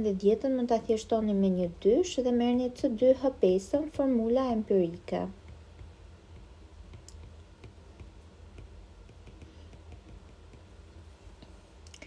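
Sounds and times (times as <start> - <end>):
steady low hum: 0.0 - 12.0
stylus tapping on glass screen: 5.4 - 10.7.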